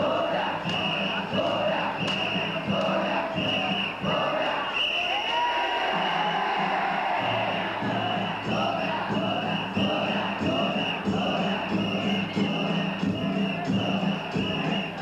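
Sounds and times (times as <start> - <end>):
festival bells: 0.0 - 5.2, 7.3 - 15.0
crowd calling out together: 0.0 - 15.0
festival drums: 0.0 - 15.0.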